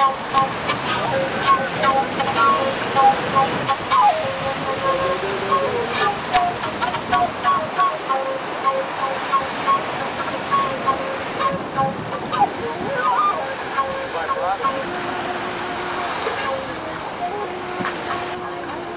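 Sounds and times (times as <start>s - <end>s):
ocean surf breaking: 0.0s - 18.9s.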